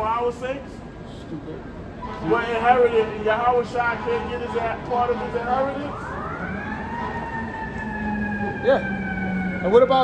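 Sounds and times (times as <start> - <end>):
emergency vehicle siren: 2.0 - 10.0.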